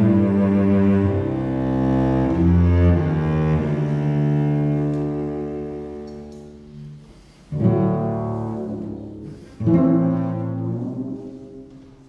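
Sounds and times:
bowed cello note: 0.0s - 11.6s.

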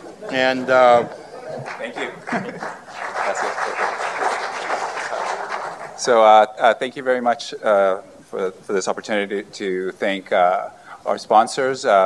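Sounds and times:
audience applauding: 1.4s - 6.1s.

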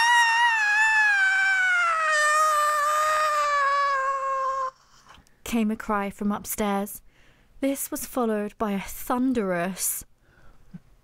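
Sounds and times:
high-pitched cry sliding down: 0.0s - 5.0s.

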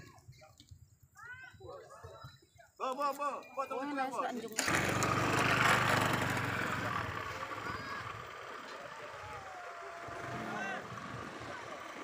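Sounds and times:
small engine droning: 4.6s - 12.0s.

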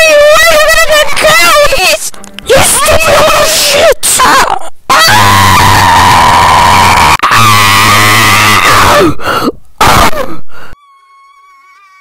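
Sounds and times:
loud distorted scream: 4.9s - 9.2s.

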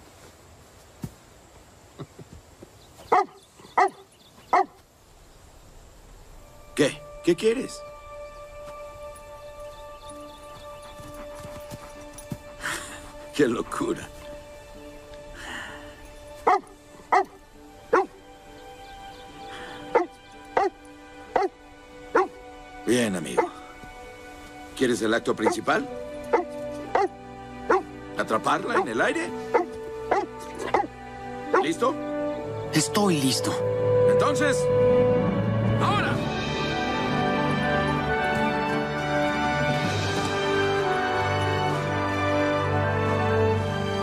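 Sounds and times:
soft film score music: 2.7s - 44.0s
dog barking: 3.1s - 4.8s, 16.4s - 18.2s, 19.9s - 21.6s, 22.2s - 22.4s, 23.4s - 23.6s, 26.3s - 27.9s, 29.5s - 30.9s.

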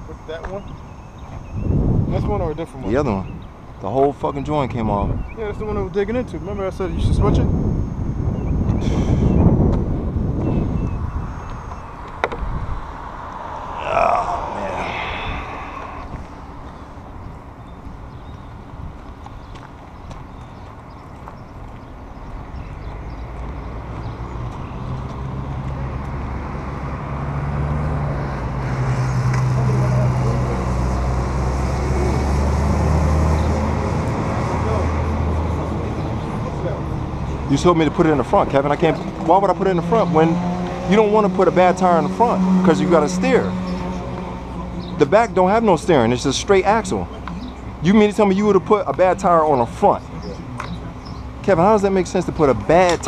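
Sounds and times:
vehicle engine humming: 0.0s - 53.0s.

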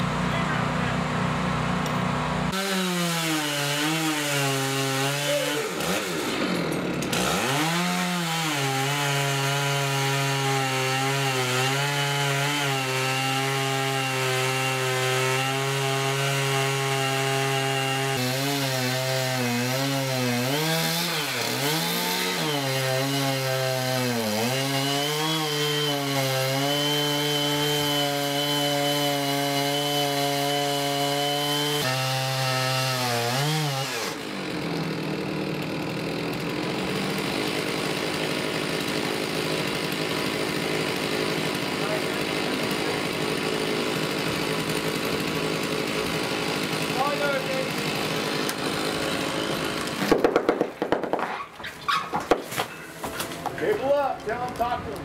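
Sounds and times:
chainsaw cutting wood: 0.0s - 54.7s.

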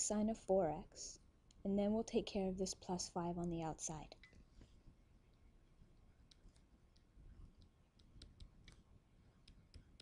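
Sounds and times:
low background hum: 0.0s - 10.0s
stylus tapping on tablet screen: 6.2s - 10.0s.

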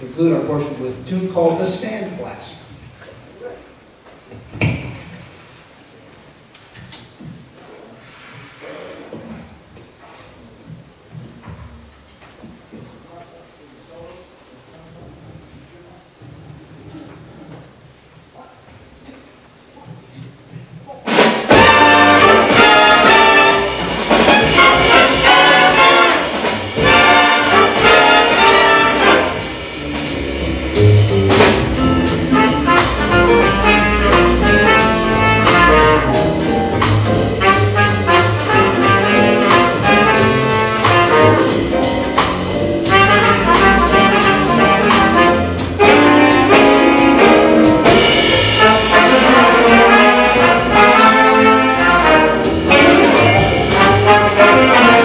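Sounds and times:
drums: 0.0s - 13.1s, 14.9s - 55.0s
trombones: 21.1s - 55.0s
trumpets: 21.1s - 55.0s
piano: 21.3s - 55.0s
upright bass: 21.5s - 55.0s.

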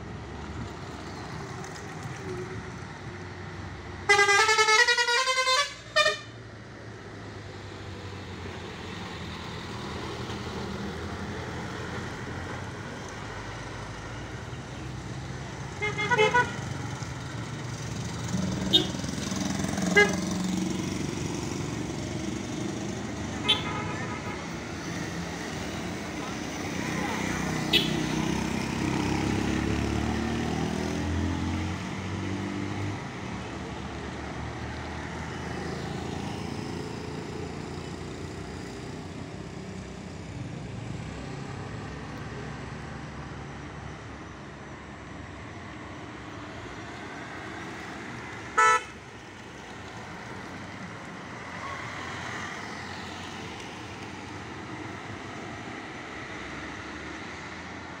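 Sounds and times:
vehicle engines passing: 0.0s - 4.7s, 5.3s - 58.0s.

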